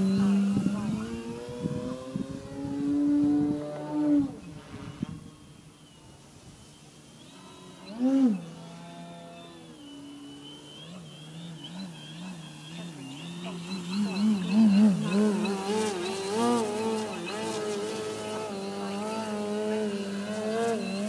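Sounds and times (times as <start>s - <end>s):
model plane motor buzzing: 0.0s - 21.0s.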